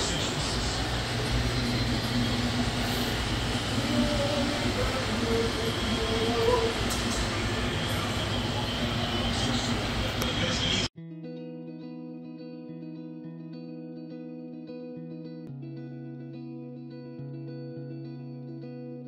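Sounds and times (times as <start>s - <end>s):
faint voice or tv sound: 0.0s - 10.9s
low hum: 0.0s - 10.9s
room rumble: 0.0s - 10.9s.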